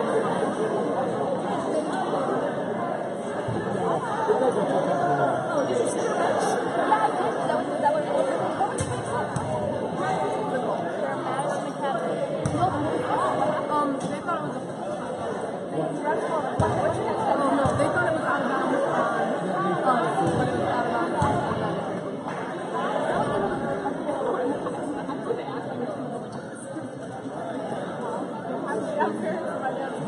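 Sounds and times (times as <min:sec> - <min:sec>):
echoing crowd chatter: 0:00.0 - 0:30.0.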